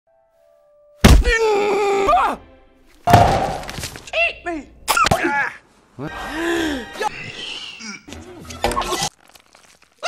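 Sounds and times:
heavy thunk: 0:03.1 - 0:03.8
loud impact: 0:03.1 - 0:03.8.

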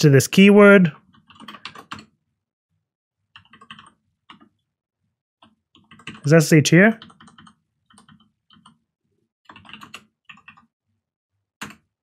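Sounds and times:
computer keyboard typing: 0:01.0 - 0:02.2, 0:03.3 - 0:04.6, 0:05.4 - 0:10.8, 0:11.6 - 0:12.0.

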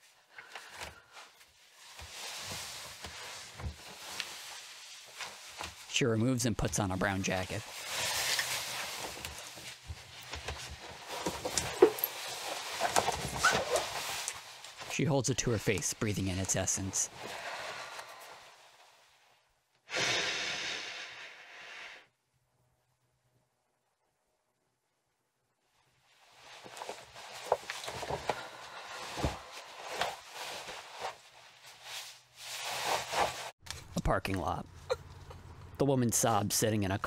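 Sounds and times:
fabric rustling: 0:01.0 - 0:05.9, 0:07.2 - 0:15.0, 0:25.9 - 0:33.6
woman sniffing through nose: 0:19.9 - 0:22.1.

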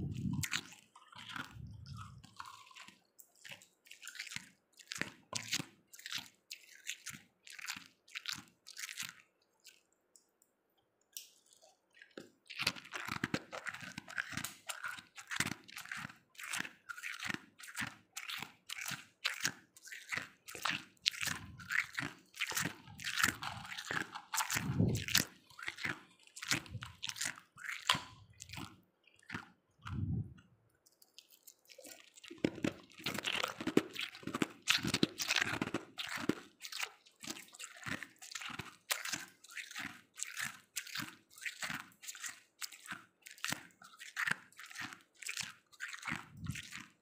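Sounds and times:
frost being chewed: 0:00.0 - 0:10.5, 0:11.1 - 0:47.0.

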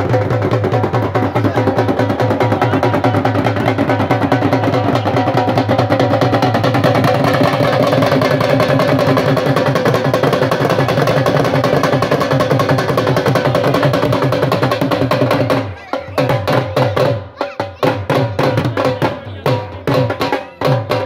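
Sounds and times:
drums beaten in fast rhythm: 0:00.0 - 0:21.0.

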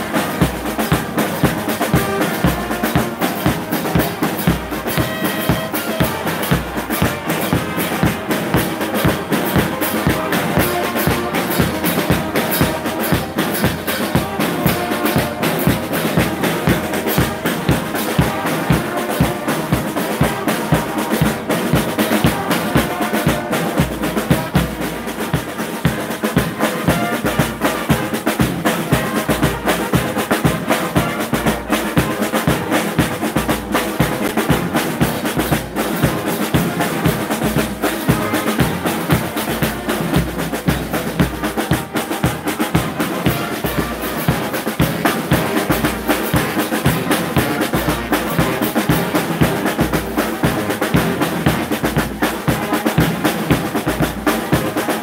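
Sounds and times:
snare drums playing: 0:00.0 - 0:55.0.

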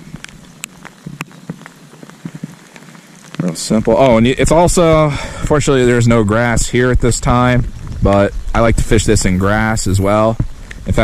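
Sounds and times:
raindrops ticking: 0:00.0 - 0:11.0
soft rain hiss: 0:00.0 - 0:11.0.

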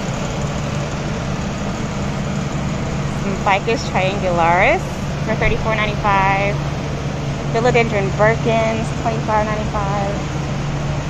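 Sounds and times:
ventilation fan running: 0:00.0 - 0:11.0.

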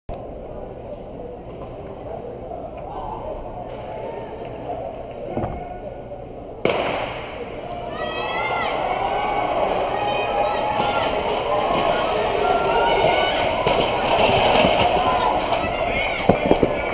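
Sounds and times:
crowd shouting and cheering: 0:02.7 - 0:16.9.

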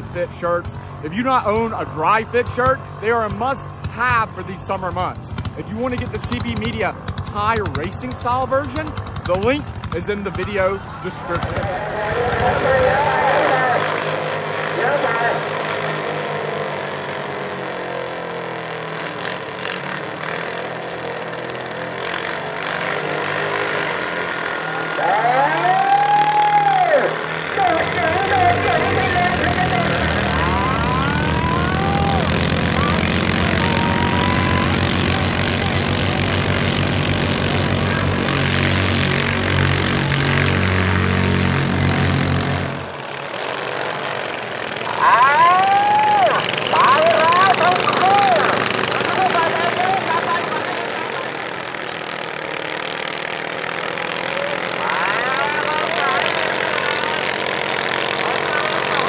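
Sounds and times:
tractor engines running hard: 0:00.0 - 0:59.0
people shouting: 0:11.4 - 0:14.0, 0:24.7 - 0:36.7, 0:44.8 - 0:51.3.

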